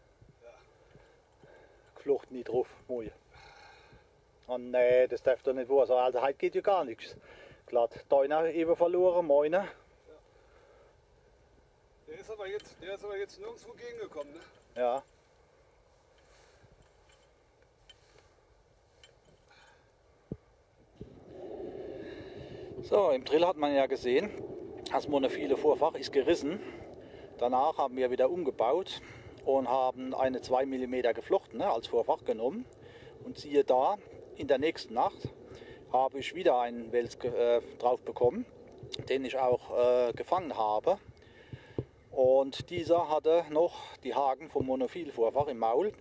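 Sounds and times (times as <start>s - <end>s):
steady hum: 9.8s - 43.2s.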